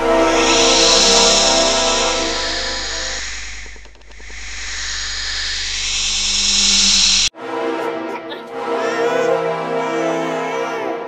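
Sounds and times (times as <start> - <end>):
hissing noise: 0.0 - 7.3
low hum: 0.0 - 7.3.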